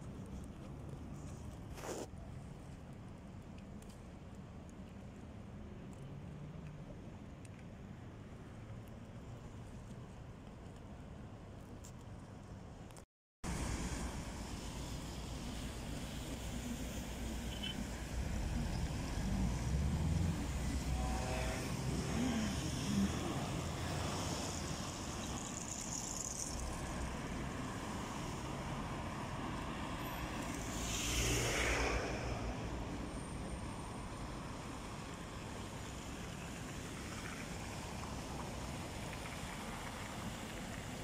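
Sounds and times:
cars driving past: 0:13.5 - 0:41.0
car passing close: 0:17.5 - 0:33.4.

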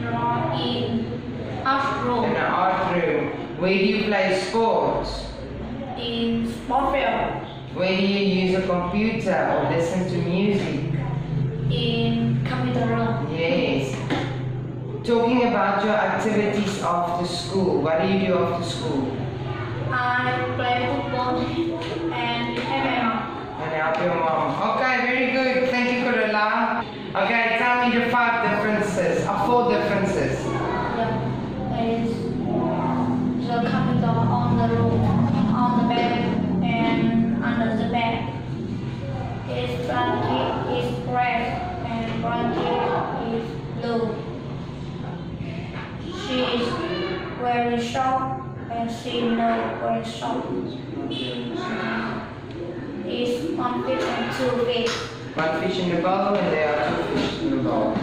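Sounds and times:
people talking: 0:00.0 - 0:58.0.

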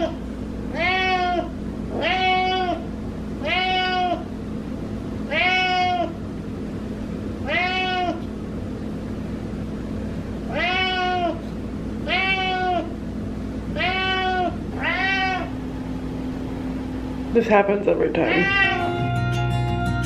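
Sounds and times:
cat meowing: 0:00.7 - 0:04.3, 0:05.3 - 0:06.2, 0:07.4 - 0:08.2, 0:10.5 - 0:11.4, 0:12.0 - 0:12.9, 0:13.7 - 0:15.5, 0:18.3 - 0:19.0.

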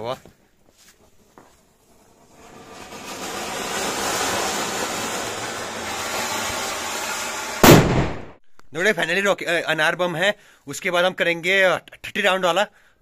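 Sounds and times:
firework fountain hissing and crackling: 0:01.4 - 0:07.9
loud firework bang: 0:02.3 - 0:08.4.

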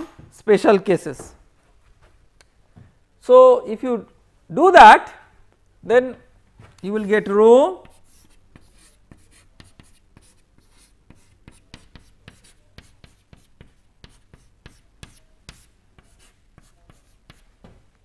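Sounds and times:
chalk writing on chalkboard: 0:06.9 - 0:17.6.

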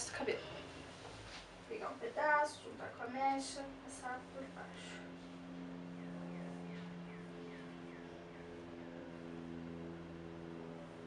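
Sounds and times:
low hum of held tones: 0:00.0 - 0:11.0.

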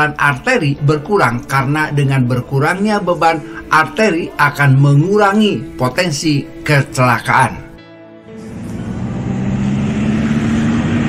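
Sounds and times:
tyre and road noise: 0:08.4 - 0:11.0
vehicle engine hum: 0:08.4 - 0:11.0.

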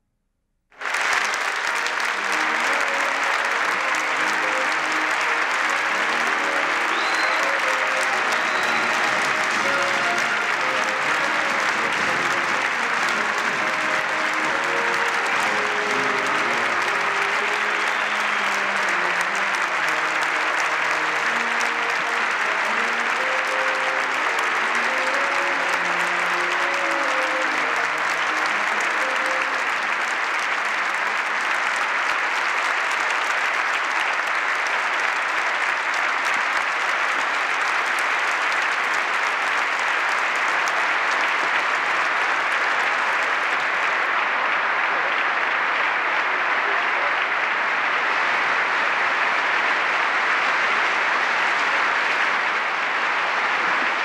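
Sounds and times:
audience applause: 0:00.8 - 0:54.0
military band playing: 0:01.8 - 0:29.6.

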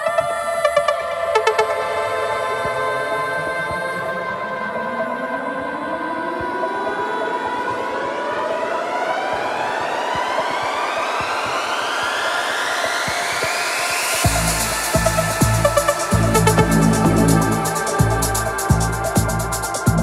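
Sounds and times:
synth pad chords: 0:14.2 - 0:19.8
bass and beat: 0:14.2 - 0:20.0
rising synth sweep: 0:14.6 - 0:18.8.

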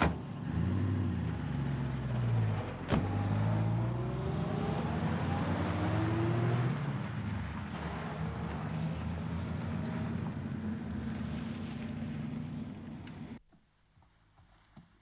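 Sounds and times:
car engines pulling away: 0:00.0 - 0:13.4.

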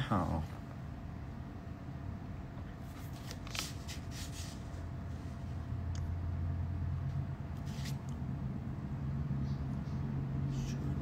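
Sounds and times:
low room hum: 0:00.0 - 0:11.0
soft rustles: 0:02.8 - 0:05.5.

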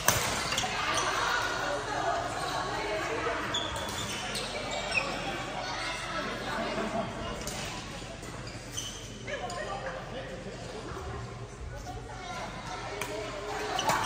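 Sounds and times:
rackets hitting shuttlecocks: 0:00.0 - 0:00.6.

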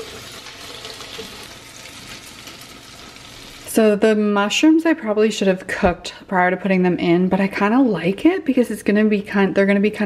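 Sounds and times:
sausages sizzling in a frying pan: 0:00.0 - 0:04.0.

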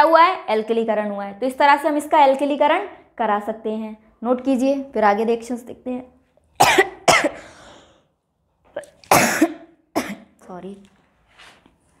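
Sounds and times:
person coughing: 0:06.6 - 0:07.6, 0:08.8 - 0:10.3.

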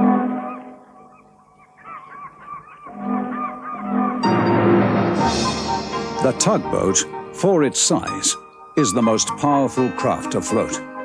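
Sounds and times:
seagulls crying: 0:00.0 - 0:04.3.

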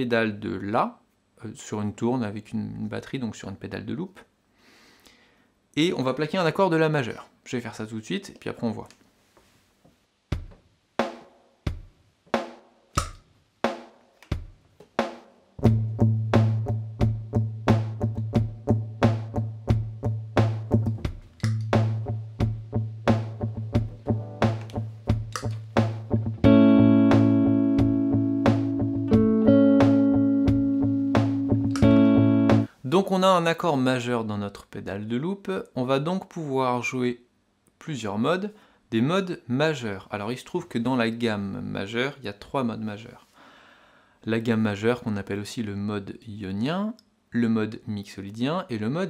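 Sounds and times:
loop-pedal drum beat: 0:10.3 - 0:32.7
electric guitar picking low note: 0:26.3 - 0:32.7
guitar chord ringing: 0:26.4 - 0:32.7.

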